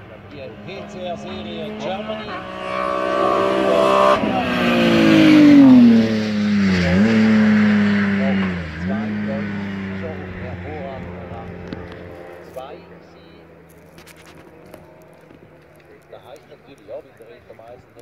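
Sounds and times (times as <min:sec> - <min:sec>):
race car engine at high revs: 0:00.0 - 0:16.9.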